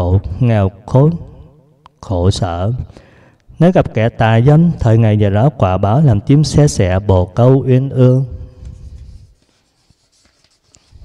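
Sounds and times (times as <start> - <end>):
man speaking: 0.0 - 2.9, 3.5 - 8.4.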